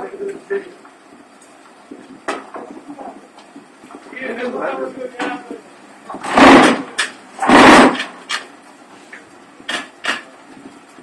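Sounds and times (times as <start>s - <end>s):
low background noise: 0.0s - 11.0s
sharp metal clank: 6.2s - 8.2s.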